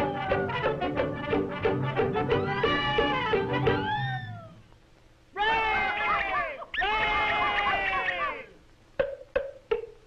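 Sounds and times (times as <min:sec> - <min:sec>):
falling pitch slide: 0:02.2 - 0:04.7
cartoon cat meowing: 0:02.3 - 0:04.6.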